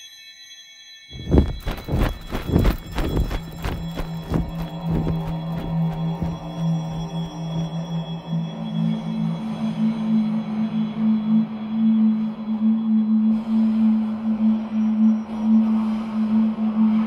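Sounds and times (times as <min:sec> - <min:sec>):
low sustained drone: 0:01.2 - 0:17.0.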